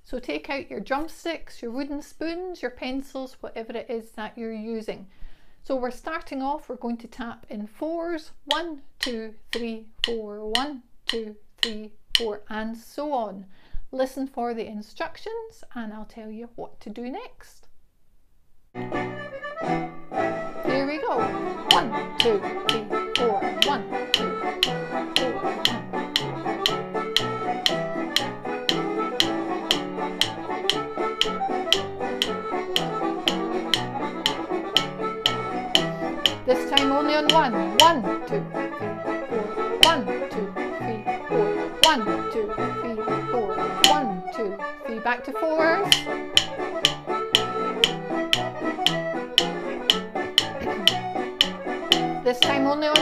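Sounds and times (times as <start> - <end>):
drumsticks clicked together: 8.5 - 12.3, 21.7 - 38.0, 39.8 - 40.2, 41.8 - 42.2, 43.8 - 44.1, 45.9 - 53.0
music track: 18.8 - 53.0.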